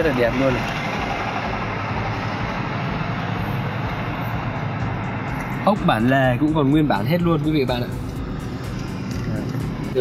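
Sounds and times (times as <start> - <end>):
steady rushing background noise: 0.0 - 10.0.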